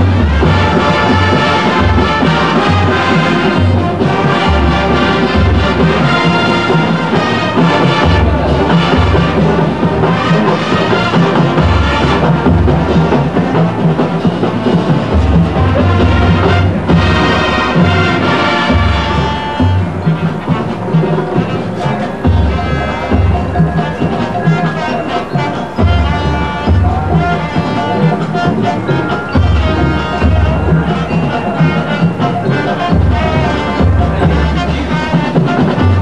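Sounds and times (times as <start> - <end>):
marching band playing: 0.0 - 36.0.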